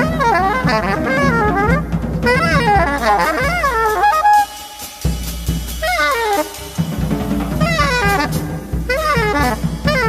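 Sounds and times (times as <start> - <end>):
drums rumbling and hitting: 0.0 - 10.0
saxophone: 0.0 - 10.0.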